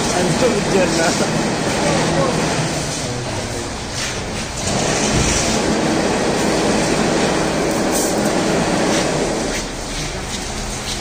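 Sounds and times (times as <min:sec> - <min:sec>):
weaving machine clattering: 0:04.0 - 0:09.7.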